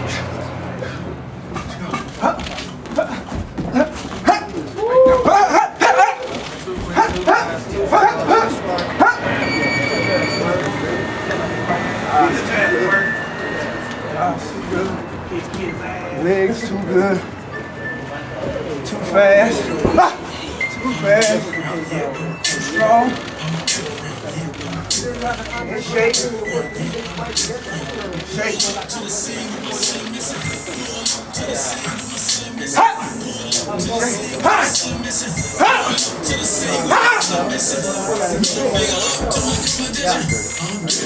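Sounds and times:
man breathing sharply: 0.0s - 1.2s
music: 20.4s - 41.0s.

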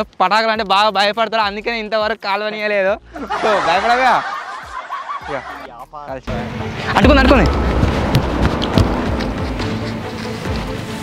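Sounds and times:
men laughing: 3.0s - 5.8s.

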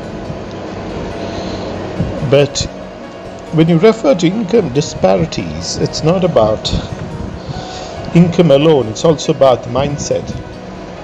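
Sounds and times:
soft background music: 0.0s - 11.0s
steady rushing noise: 0.0s - 11.0s.

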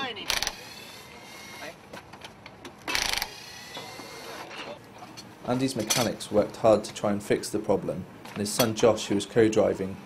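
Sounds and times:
impact wrench bursts: 0.3s - 1.7s, 2.9s - 4.4s.

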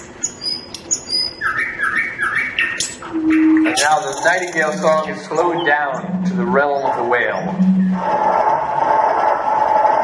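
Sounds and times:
recorded bird song: 0.0s - 8.0s.

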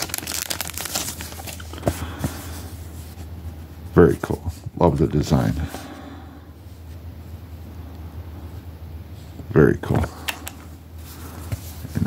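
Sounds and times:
plastic sleeve crinkling: 0.0s - 1.9s.

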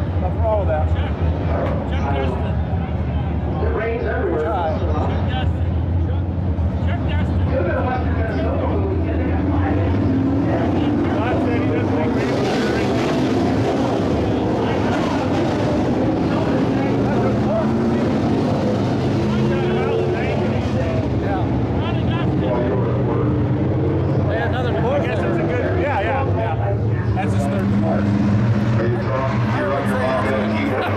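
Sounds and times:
people talking: 0.0s - 30.9s
race car engines droning: 0.0s - 30.9s.

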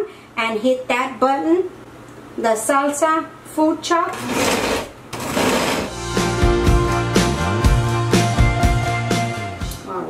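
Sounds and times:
blender motor pulsing: 4.1s - 6.0s.

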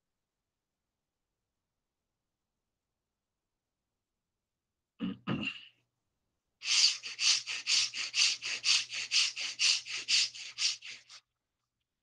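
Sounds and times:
person coughing: 5.0s - 5.8s
rapid forced breathing through nose: 6.6s - 11.2s.

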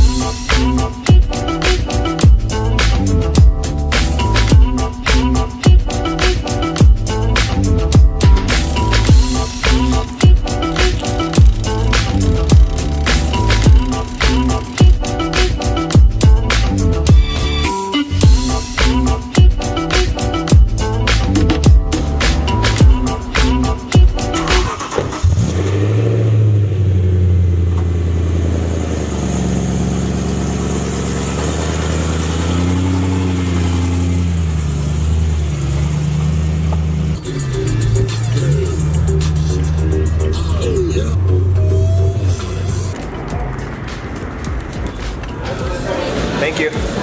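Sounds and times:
car engine starting and idling: 7.1s - 15.8s, 20.9s - 46.7s.

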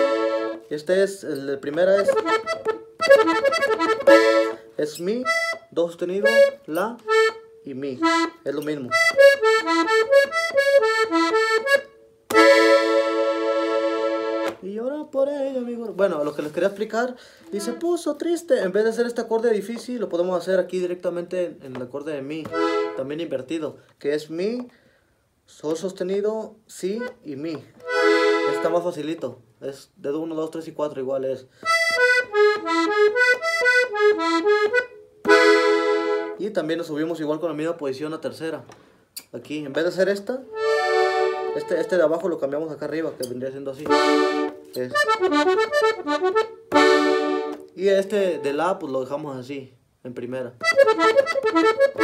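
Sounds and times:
accordion chord held: 0.0s - 0.7s, 1.9s - 14.6s, 17.4s - 18.0s, 22.4s - 23.1s, 27.8s - 28.8s, 31.6s - 36.4s, 40.5s - 42.2s, 43.8s - 48.8s, 50.6s - 52.0s
piano accordion melody: 0.0s - 14.7s, 17.4s - 18.3s, 22.4s - 23.4s, 27.0s - 29.1s, 31.6s - 36.5s, 40.4s - 49.0s, 50.6s - 52.0s.

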